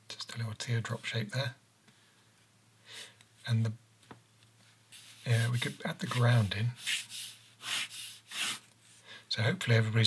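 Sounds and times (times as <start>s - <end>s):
pen scratching on paper: 5.0s - 8.7s.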